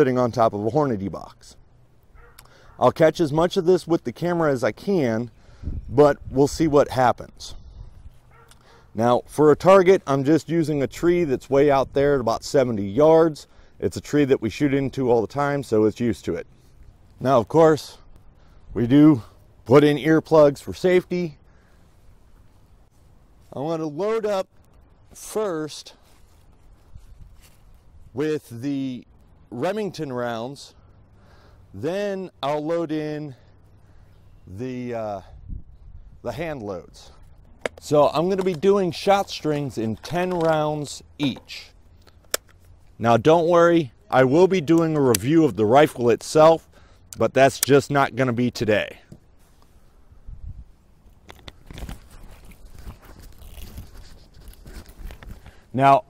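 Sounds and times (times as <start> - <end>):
sharp clicks: 42.0 - 42.6.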